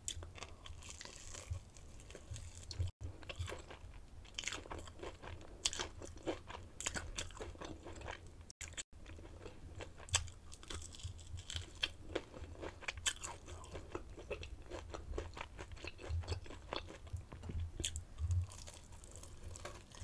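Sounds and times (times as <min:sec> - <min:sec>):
chewing crispy fried food: 0:00.0 - 0:20.0.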